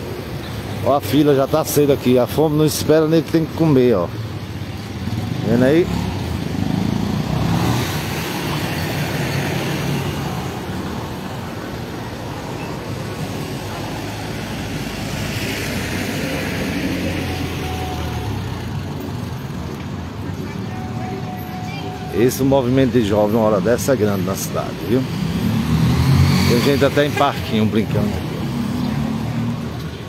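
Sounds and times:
cars and motorcycles passing: 0:00.0 - 0:30.0.

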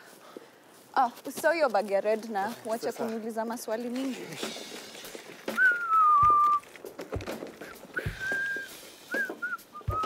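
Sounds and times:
person whistling a tune: 0:05.5 - 0:06.7, 0:07.6 - 0:10.0
suitcase thumps: 0:06.2 - 0:08.5.

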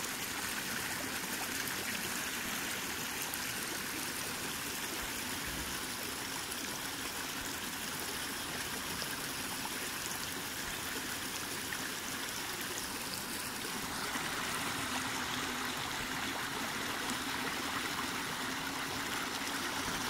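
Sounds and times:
stream flowing over rock: 0:00.0 - 0:20.0.

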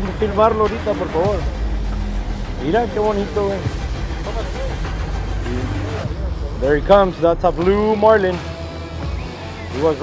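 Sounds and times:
boat engine rumbling: 0:00.0 - 0:07.7.

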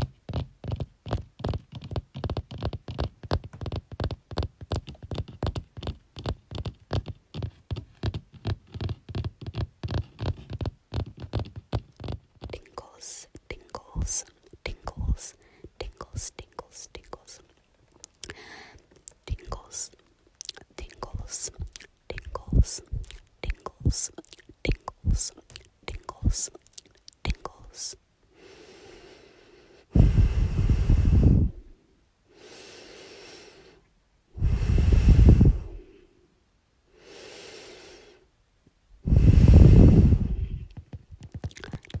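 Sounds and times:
close whispering: 0:12.0 - 0:28.0, 0:41.5 - 0:42.0
breathing close to microphone: 0:14.9 - 0:16.2, 0:18.1 - 0:19.0, 0:28.3 - 0:36.3, 0:36.9 - 0:38.3, 0:39.0 - 0:40.9
soft low thumps: 0:20.9 - 0:26.4
exhale blowing on microphone: 0:29.8 - 0:31.8, 0:34.4 - 0:36.2, 0:39.0 - 0:40.8.

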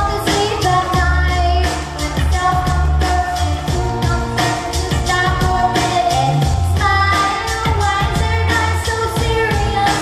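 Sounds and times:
accompaniment with heavy bass: 0:00.0 - 0:10.0
person singing pop song: 0:00.0 - 0:10.0.

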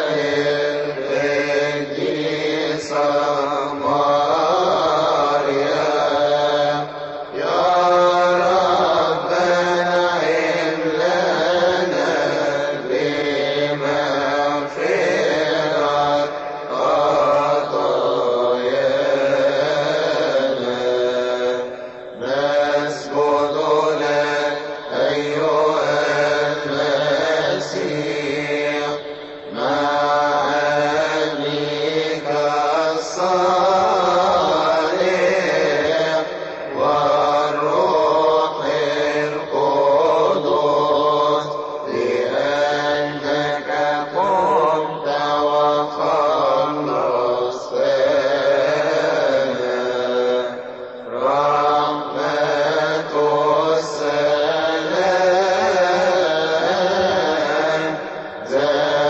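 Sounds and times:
man chanting a hymn: 0:00.0 - 0:59.0.

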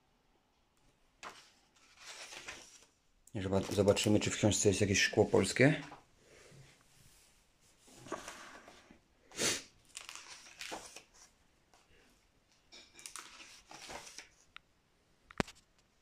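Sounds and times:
book pages rustling: 0:01.2 - 0:06.0, 0:07.7 - 0:08.9, 0:09.9 - 0:11.9, 0:13.0 - 0:14.5.

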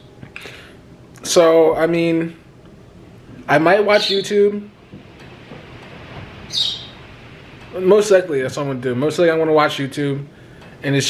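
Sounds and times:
high bird chirp: 0:06.5 - 0:07.0.

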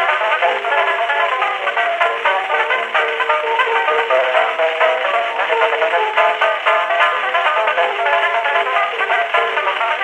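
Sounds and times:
banjo playing ragtime tune: 0:00.0 - 0:10.0.

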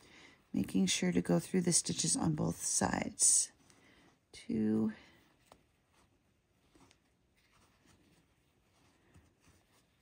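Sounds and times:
yarn rustling: 0:00.0 - 0:10.0.

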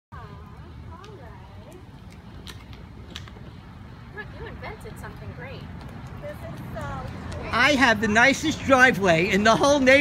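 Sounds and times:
plastic wheels rolling on asphalt: 0:00.6 - 0:10.0.

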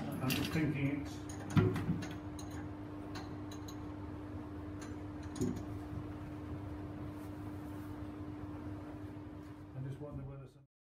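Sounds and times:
steady low hum: 0:00.0 - 0:10.7.

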